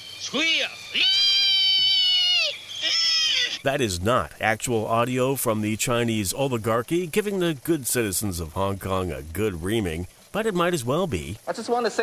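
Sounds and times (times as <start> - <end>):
person squealing: 1.0 - 3.6.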